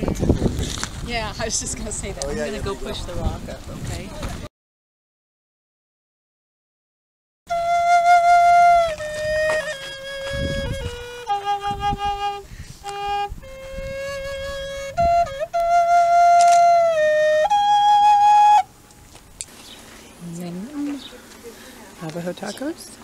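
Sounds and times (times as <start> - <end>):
flute playing slow melody: 7.5 - 19.0.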